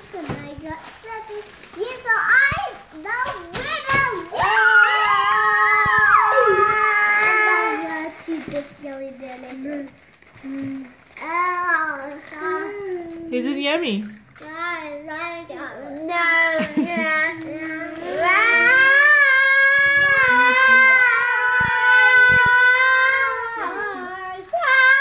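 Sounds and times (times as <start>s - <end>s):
children yelling and cheering: 1.1s - 8.5s, 16.1s - 25.0s
long loud cry of kids: 4.3s - 8.1s, 17.7s - 25.0s.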